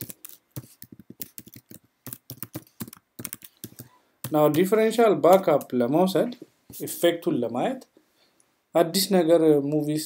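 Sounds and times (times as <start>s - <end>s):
typing on computer keyboard: 0.0s - 4.7s.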